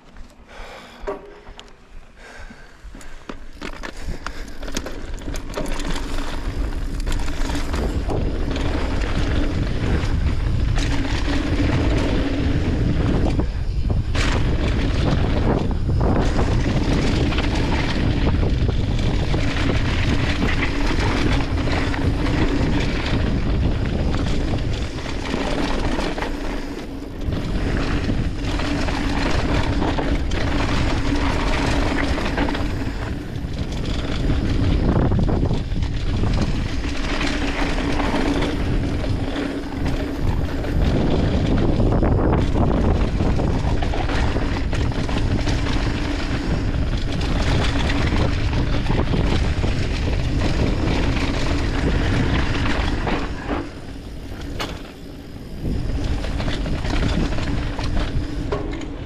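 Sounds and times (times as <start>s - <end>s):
bike tyres rolling over dirt: 0.0s - 59.0s
wind buffeting microphone: 2.2s - 59.0s.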